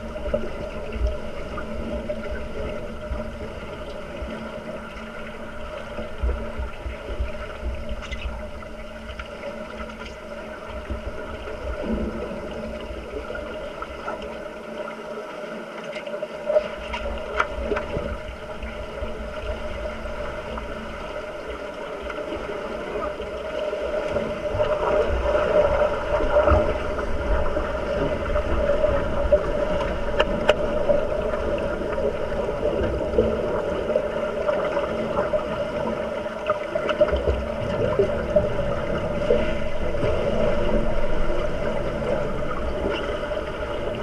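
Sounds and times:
muffled swishing of swimmers and bubbles: 0:00.0 - 0:44.0
underwater hum: 0:00.0 - 0:44.0.

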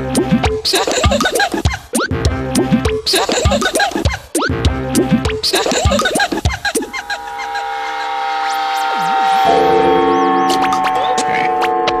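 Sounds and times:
electronic music: 0:00.0 - 0:01.3, 0:02.0 - 0:12.0.

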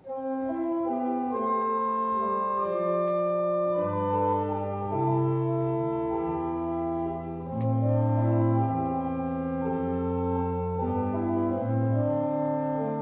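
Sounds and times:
church organ chords: 0:00.0 - 0:13.0.

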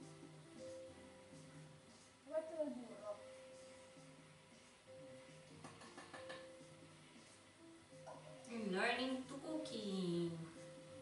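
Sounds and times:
faint television playing: 0:00.0 - 0:11.0
soft held music tones: 0:00.0 - 0:11.0.

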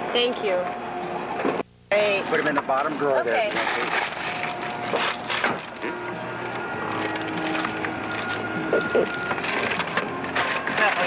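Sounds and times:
plastic wrapping crinkling: 0:03.4 - 0:11.0.

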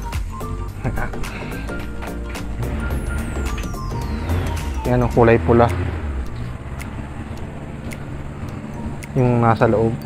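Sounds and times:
low traffic rumble: 0:00.0 - 0:10.0
faint light ticks: 0:05.6 - 0:10.0.

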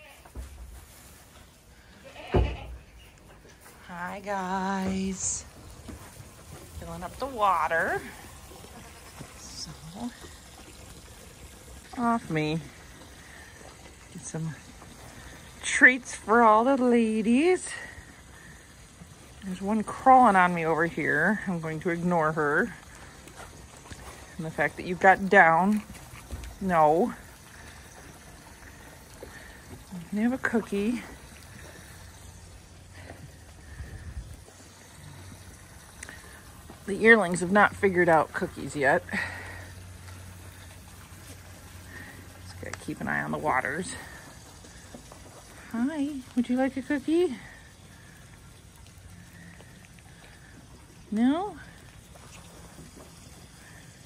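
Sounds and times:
quiet barn background: 0:00.0 - 0:54.0
goat bleating: 0:01.8 - 0:02.8
water running from hose: 0:03.5 - 0:54.0.

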